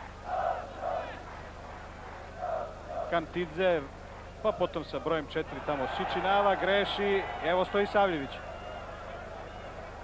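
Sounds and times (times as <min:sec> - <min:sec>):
stadium crowd chanting: 0:00.0 - 0:04.8, 0:05.5 - 0:09.6.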